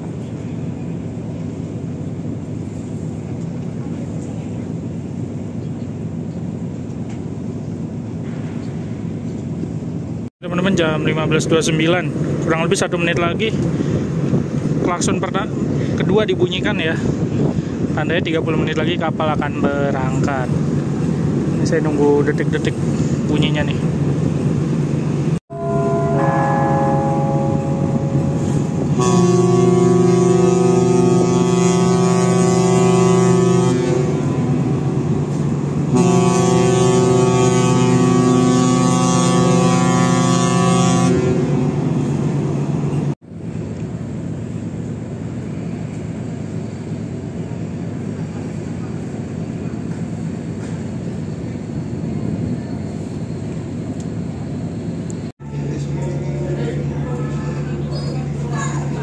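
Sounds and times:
ship horn blasts: 25.5s - 43.2s, 55.4s - 59.0s.

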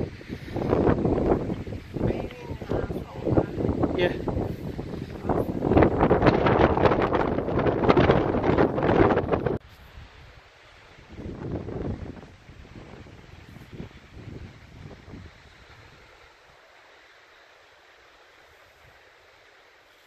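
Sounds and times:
wind buffeting microphone: 0.0s - 16.2s.

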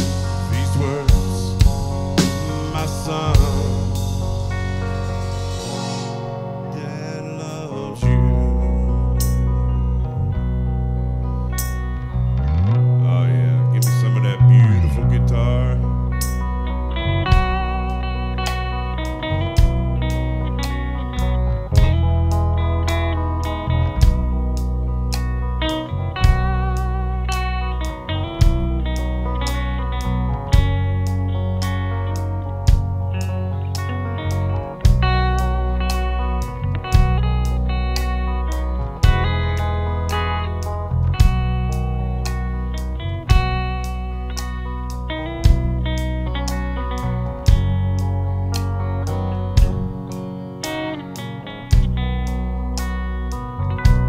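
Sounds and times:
bass guitar: 0.0s - 54.0s
electric guitar lead: 0.0s - 54.0s
drums with cymbal ticks: 47.5s - 47.8s.

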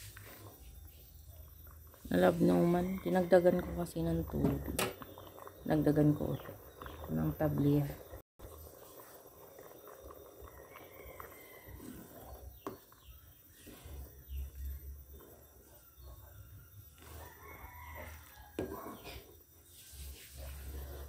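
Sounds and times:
low rumbling of pot stirring: 0.0s - 21.0s
rooster crowing faintly: 10.5s - 12.4s, 16.1s - 19.2s.

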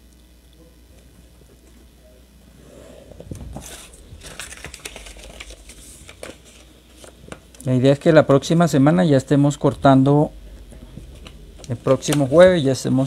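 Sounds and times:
stiff paper rustling and crackling: 3.3s - 7.4s.

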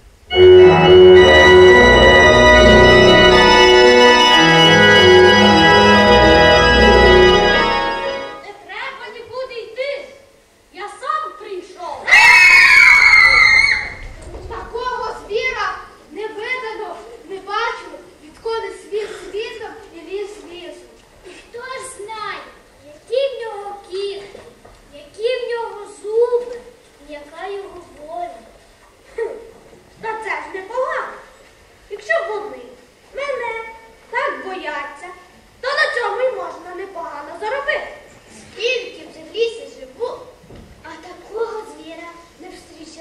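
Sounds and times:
children screaming: 12.0s - 14.1s.

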